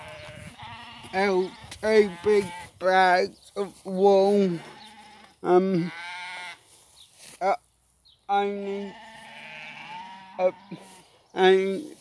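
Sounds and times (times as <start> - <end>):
sheep bleating: 0.0 - 3.1, 4.1 - 6.8, 8.4 - 12.0.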